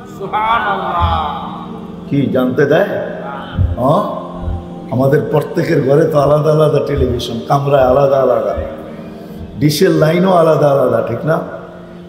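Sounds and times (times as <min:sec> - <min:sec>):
man chanting sermon: 0:00.0 - 0:11.8.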